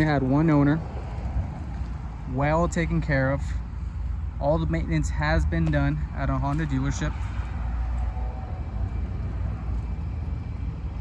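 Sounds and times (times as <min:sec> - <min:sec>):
low outdoor background rumble: 0:00.0 - 0:11.0.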